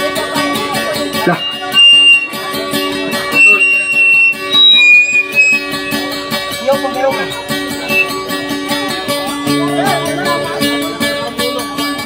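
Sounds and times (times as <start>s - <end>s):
guitar fast plucked rhythm: 0.0s - 12.0s
high held tone: 0.6s - 8.5s, 9.4s - 12.0s.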